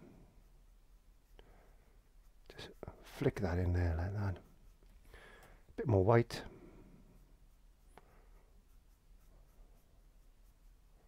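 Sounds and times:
paintbrush dabbing on canvas: 0:00.3 - 0:05.1, 0:07.0 - 0:11.0.

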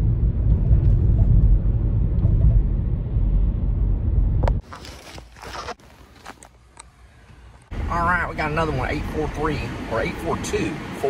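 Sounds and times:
car road and engine rumble: 0:00.0 - 0:11.0
phone rustling against clothing: 0:04.6 - 0:07.7.

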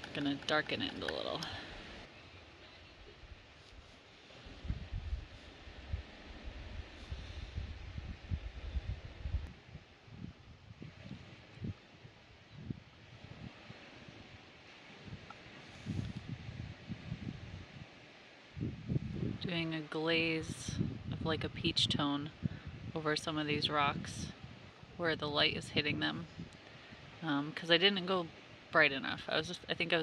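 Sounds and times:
wind buffeting microphone: 0:02.7 - 0:30.0.

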